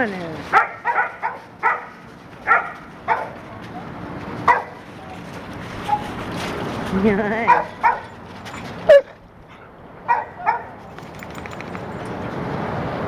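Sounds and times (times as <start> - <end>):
dog barking: 0.5 - 3.4, 4.5 - 4.8, 7.5 - 8.2, 10.0 - 10.8.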